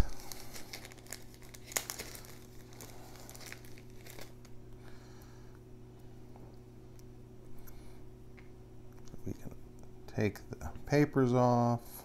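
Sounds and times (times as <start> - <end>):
plastic bag crinkling: 0.0 - 4.6
steady low hum: 0.0 - 12.0.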